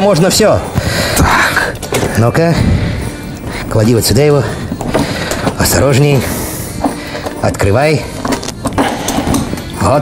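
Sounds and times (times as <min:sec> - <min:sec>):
background music: 0:00.0 - 0:10.0
suitcase latches clicking: 0:08.2 - 0:09.7.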